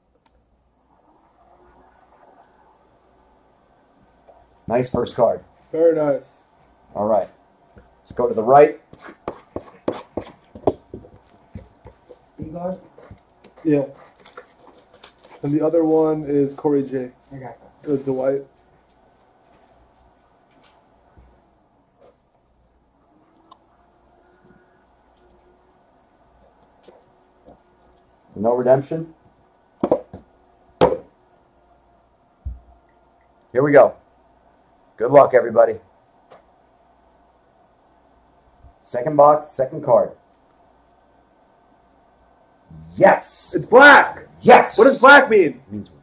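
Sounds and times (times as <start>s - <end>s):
person speaking: 11.6s - 18.7s, 42.7s - 46.0s.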